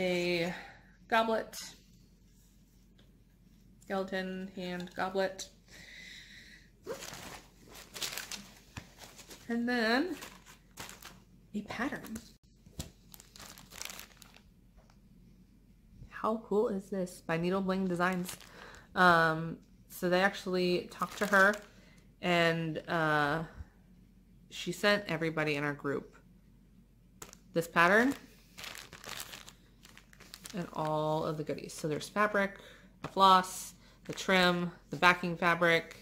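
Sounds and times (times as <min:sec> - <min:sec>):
plastic sleeve crinkling: 0:06.9 - 0:11.2, 0:11.8 - 0:14.5, 0:18.0 - 0:18.9, 0:20.9 - 0:21.8, 0:27.2 - 0:31.8.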